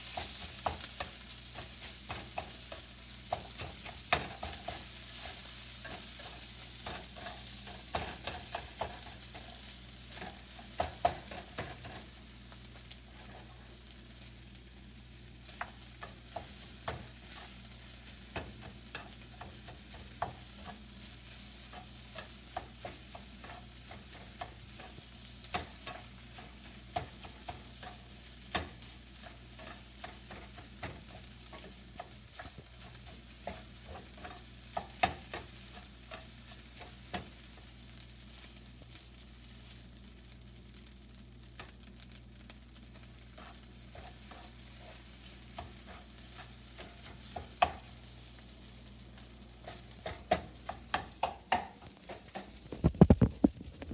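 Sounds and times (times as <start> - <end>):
utensil scraping pan: 0.0 - 12.1, 18.3 - 37.3, 43.2 - 47.9
rice sizzling in frying pan: 0.0 - 53.9.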